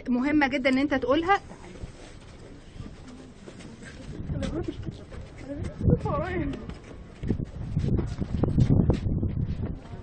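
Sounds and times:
background hubbub: 0.0s - 10.0s.

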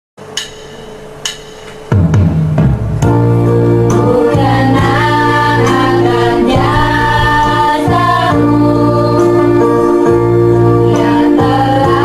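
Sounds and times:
sharp metallic strikes ringing: 0.2s - 3.4s
low sustained singing or music: 3.1s - 12.0s.

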